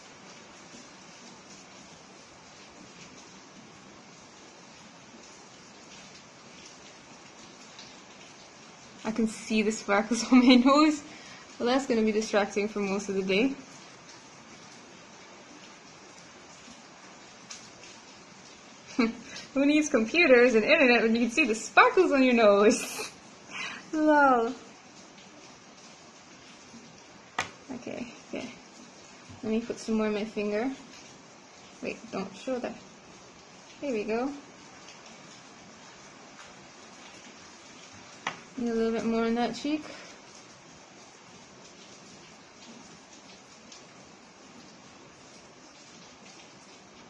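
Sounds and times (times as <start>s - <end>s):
recording hiss: 0.0s - 47.0s.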